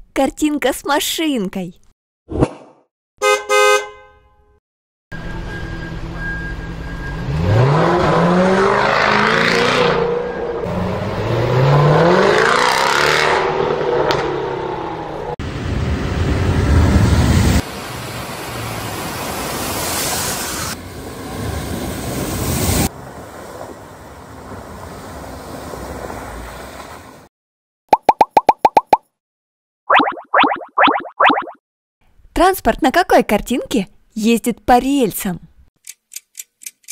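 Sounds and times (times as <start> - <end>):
engine revving hard: 7.1 - 15.0
vehicles splashing through water: 17.4 - 27.3.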